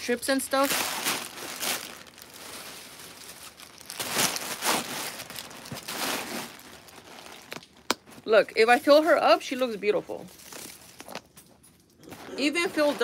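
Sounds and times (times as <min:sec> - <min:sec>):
crinkly wrapping rustling: 0:00.0 - 0:13.0.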